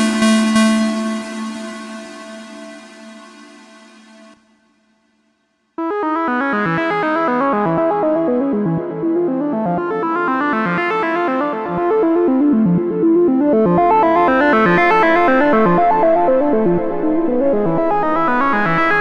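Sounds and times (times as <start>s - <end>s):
synthesizer fast sequenced notes: 0.0s - 4.4s.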